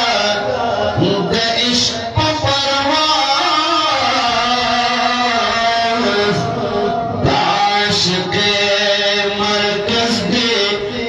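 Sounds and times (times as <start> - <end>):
man singing into a microphone: 0.0 - 11.0.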